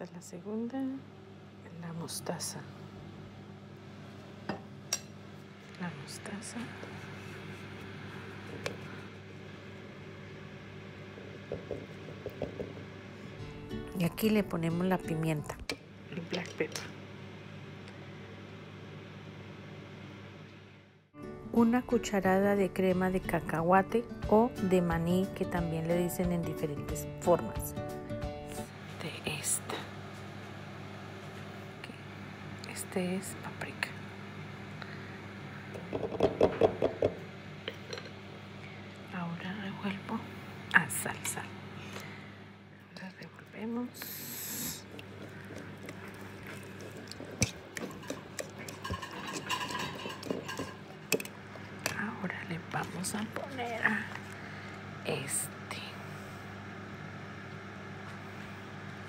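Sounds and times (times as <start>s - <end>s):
steady low hum: 0.0s - 59.0s
spoon tapping and squishing: 44.9s - 52.0s.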